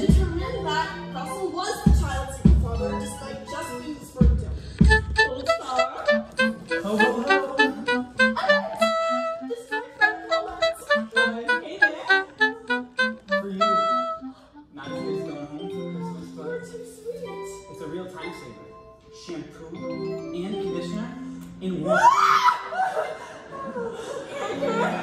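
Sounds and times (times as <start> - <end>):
woodwind playing quick runs: 4.8 - 14.5
pit orchestra playing: 4.8 - 16.0.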